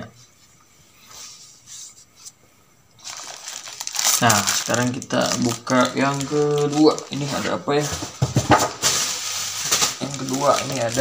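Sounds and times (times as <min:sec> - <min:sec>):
packaging bag rustling: 0:03.0 - 0:11.0.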